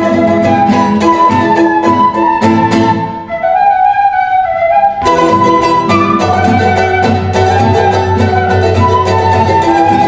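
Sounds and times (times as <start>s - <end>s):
guitar strumming: 0.0s - 10.0s
vertical flute long note: 0.0s - 10.0s.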